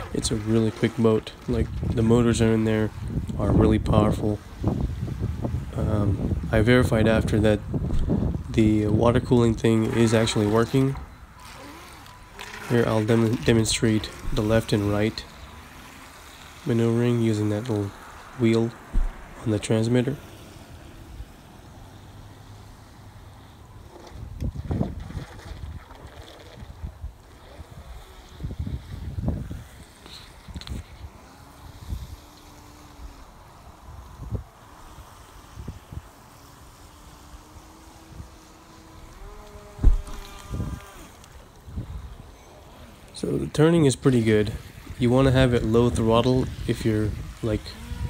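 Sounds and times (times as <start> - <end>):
toy boat electric motor whining: 0.0 - 6.5, 7.5 - 48.0
wind gusts on microphone: 0.0 - 11.9, 24.1 - 48.0
sharp thump: 18.9 - 19.4, 39.8 - 40.3.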